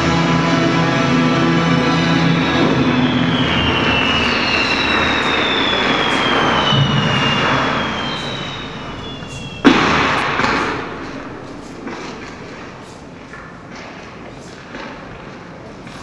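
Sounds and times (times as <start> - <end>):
noisy electronic drone: 0.0 - 13.2
high tones sliding downward: 1.8 - 13.0
loud hit with ringing tail: 6.3 - 13.0.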